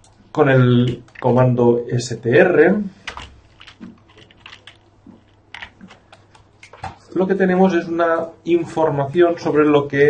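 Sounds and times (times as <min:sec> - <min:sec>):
typing on computer keyboard: 0:03.0 - 0:06.4.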